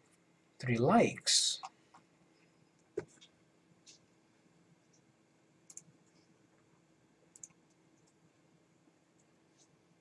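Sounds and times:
low room hum: 0:00.0 - 0:10.0
computer mouse clicks: 0:04.9 - 0:06.2, 0:07.3 - 0:08.2.

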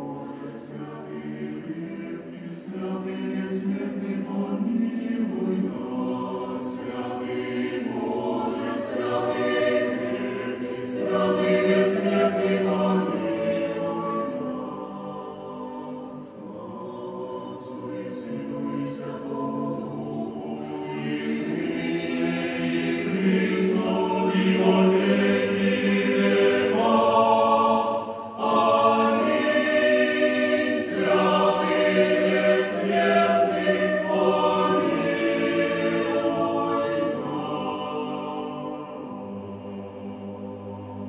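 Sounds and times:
mixed choir singing: 0:00.0 - 0:41.0.

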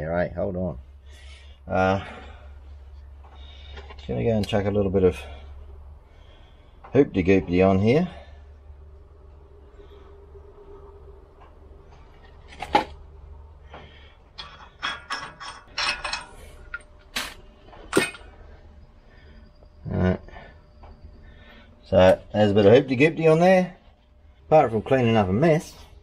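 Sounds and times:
low steady hum: 0:00.0 - 0:26.0
tin tapping on metal studs: 0:14.3 - 0:16.8.

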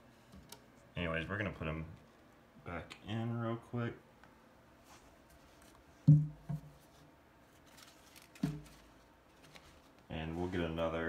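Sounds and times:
man speaking: 0:02.6 - 0:04.0, 0:10.1 - 0:11.0.

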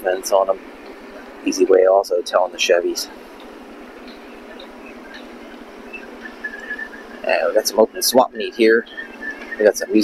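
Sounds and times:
open-air ambience hiss: 0:00.0 - 0:10.0.

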